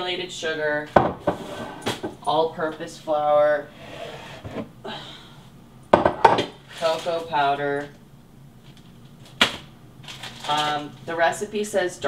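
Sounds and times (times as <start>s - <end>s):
canister knocking on countertop: 5.9s - 6.5s
canister handling clicks and rustle: 8.6s - 11.1s.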